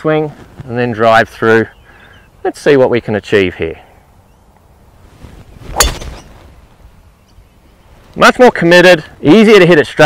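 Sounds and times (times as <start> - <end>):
golf club striking ball: 5.7 - 6.3.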